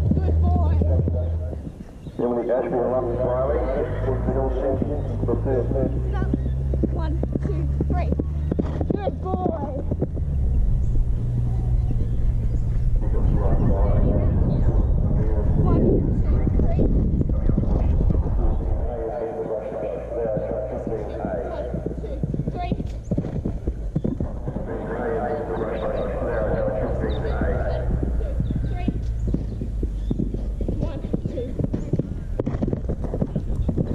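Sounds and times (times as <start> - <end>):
horse hoofbeats on grass: 0.0 - 13.3, 15.5 - 33.9
voices talking: 0.0 - 32.4.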